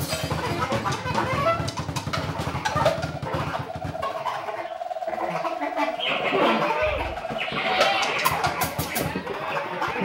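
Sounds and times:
sliding and squealing sounds: 0.0s - 10.0s
held fluttering note: 2.8s - 9.2s.

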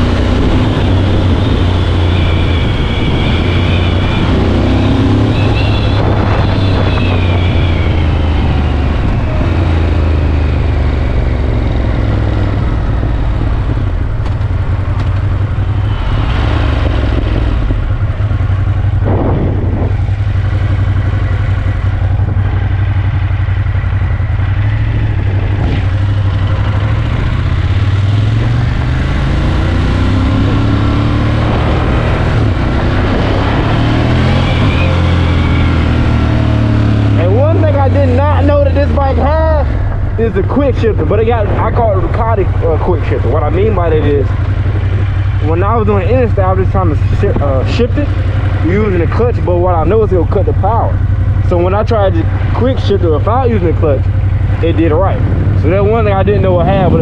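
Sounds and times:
motorcycle engine under way: 0.0s - 57.0s
wind and road noise: 0.0s - 57.0s.

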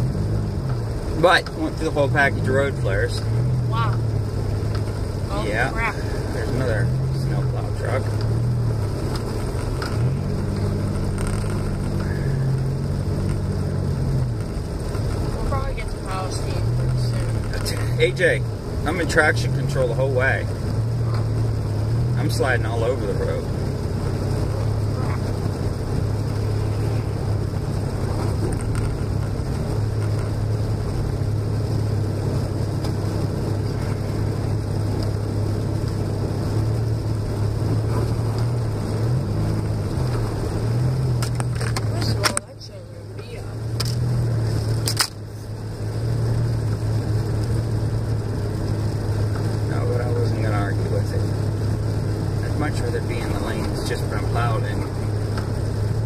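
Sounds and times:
car engine and tyre drone: 0.0s - 56.0s.

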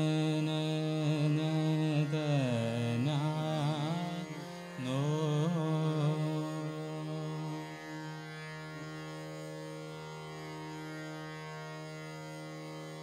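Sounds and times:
harmonium and tanpura drone: 0.0s - 13.0s.

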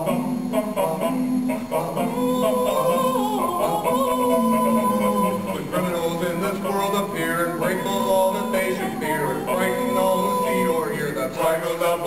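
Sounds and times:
barbershop quartet singing: 0.0s - 12.0s.

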